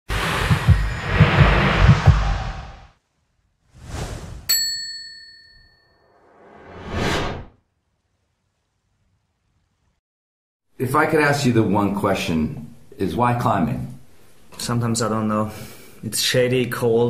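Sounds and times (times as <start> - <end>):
rising swell: 0.1 - 2.9
rushing noise: 0.1 - 3.0
whoosh: 0.1 - 3.0, 3.7 - 4.5, 6.1 - 7.5
bright bell-like ding: 4.5 - 6.0.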